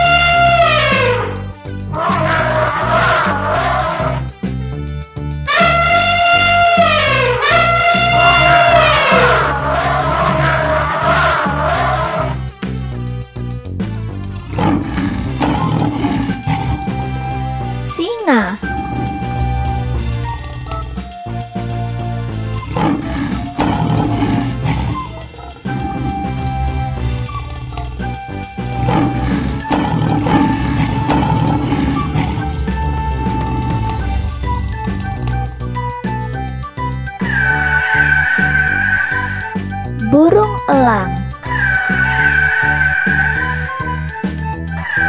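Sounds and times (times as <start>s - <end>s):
elephant trumpeting: 1.9s - 4.2s, 7.5s - 12.4s
background music: 8.4s - 45.0s
lion roaring: 14.5s - 16.8s, 22.7s - 25.0s, 28.8s - 32.6s.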